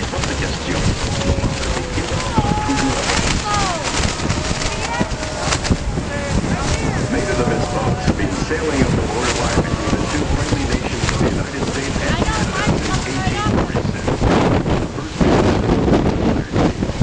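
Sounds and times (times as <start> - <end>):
river water rushing: 0.0 - 13.6
wind buffeting microphone: 0.0 - 17.0.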